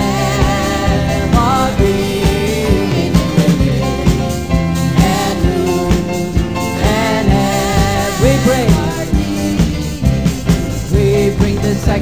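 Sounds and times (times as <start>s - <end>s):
worship band music with steady beat: 0.0s - 12.0s.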